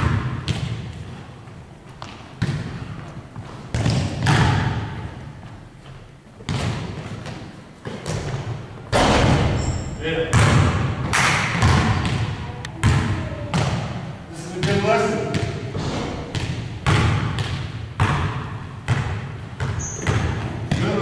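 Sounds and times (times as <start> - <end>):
basketballs bouncing on hardwood: 0.0 - 1.2, 2.0 - 5.1, 6.4 - 21.0.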